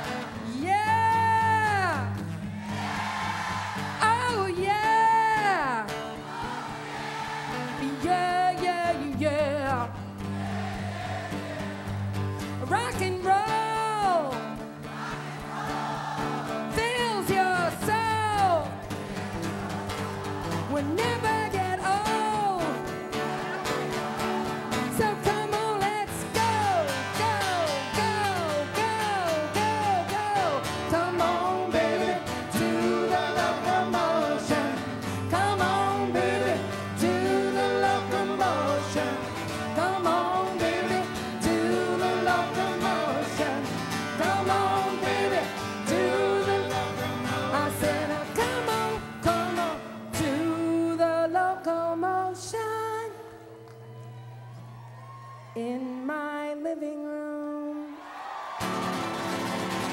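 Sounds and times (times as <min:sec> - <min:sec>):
person singing: 0:07.8 - 0:10.0, 0:20.6 - 0:53.6
pop-rock band playing: 0:18.7 - 0:50.4.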